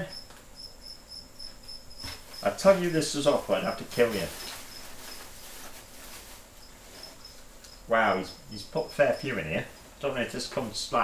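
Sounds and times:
cricket chirping: 0.0s - 5.6s, 6.2s - 10.2s
shredded paper rustling: 2.1s - 7.2s.

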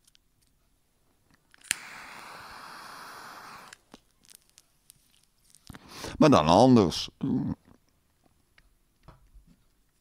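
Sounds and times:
steady hiss: 1.6s - 4.4s.

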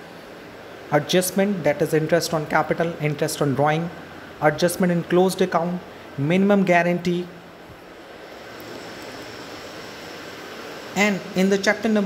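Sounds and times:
low rushing hiss: 0.0s - 12.0s.

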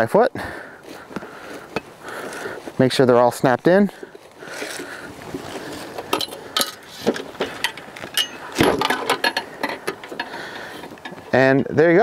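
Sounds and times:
metal table clicks and clinks: 7.6s - 10.1s.

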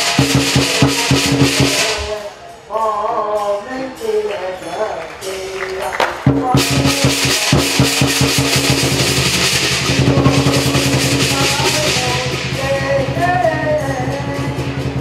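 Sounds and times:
rapid drum strokes: 0.0s - 2.4s, 6.2s - 15.0s
cymbals: 0.0s - 15.0s.

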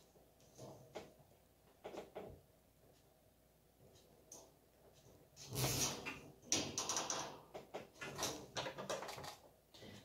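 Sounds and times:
plastic tapping wire rack: 5.4s - 9.5s.

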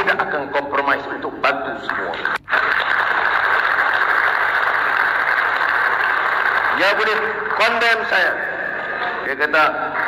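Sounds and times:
audience applauding: 1.8s - 10.0s.

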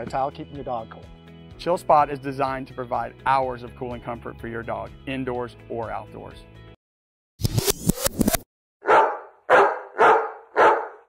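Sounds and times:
dog barking: 8.8s - 11.0s.

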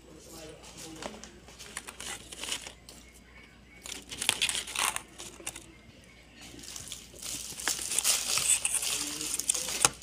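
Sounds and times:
paper box crinkling: 1.6s - 2.8s, 3.8s - 5.7s, 6.6s - 10.0s
fried chicken crackling: 3.8s - 5.8s, 6.4s - 10.0s.

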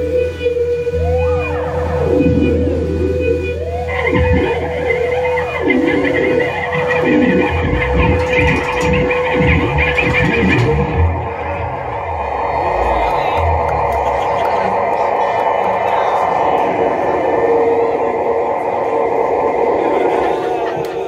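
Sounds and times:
deep bass: 0.0s - 20.1s
bending electric guitar lines: 0.0s - 21.0s.

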